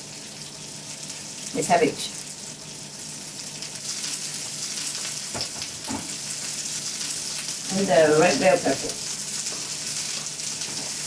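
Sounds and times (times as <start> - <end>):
vegetables sizzling in a frying pan: 0.0 - 11.0.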